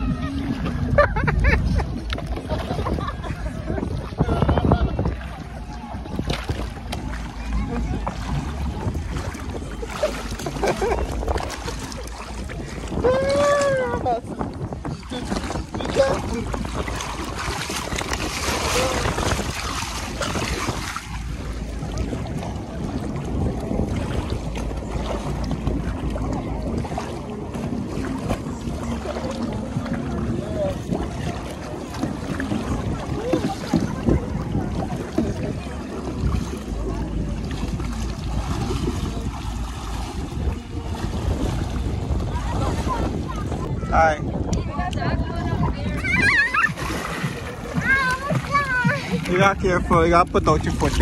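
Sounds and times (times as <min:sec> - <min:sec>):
water splashing and sloshing: 0:00.0 - 0:51.0
wind rumble on microphone: 0:00.0 - 0:51.0.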